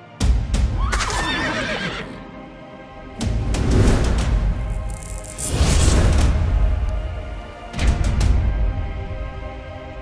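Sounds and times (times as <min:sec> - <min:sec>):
dramatic music score: 0:00.0 - 0:10.0
horse whinnying: 0:00.8 - 0:02.2.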